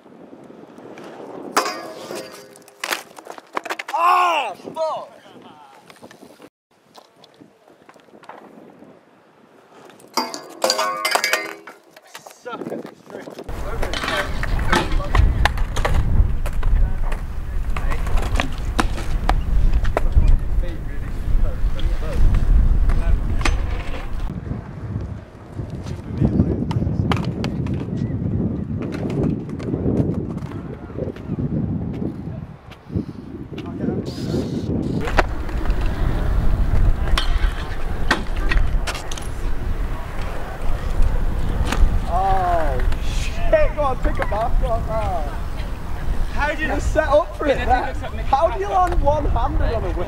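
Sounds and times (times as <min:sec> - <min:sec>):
wind buffeting microphone: 0:00.0 - 0:02.6, 0:04.0 - 0:11.4, 0:12.4 - 0:50.0
bike tyres rolling on concrete: 0:00.0 - 0:04.1, 0:05.7 - 0:32.9, 0:33.5 - 0:50.0.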